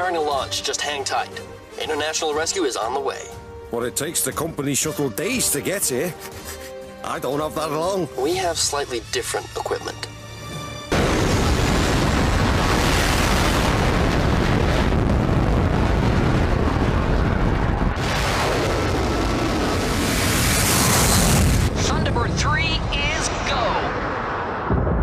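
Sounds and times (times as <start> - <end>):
rocket engines roaring: 10.9 - 25.0.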